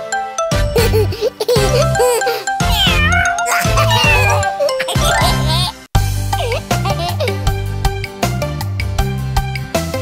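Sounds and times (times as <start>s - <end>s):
cartoon kitten meowing: 2.6s - 5.5s.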